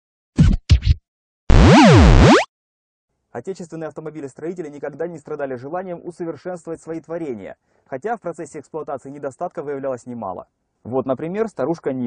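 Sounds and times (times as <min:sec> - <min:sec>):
record scratching: 0:00.4 - 0:02.5.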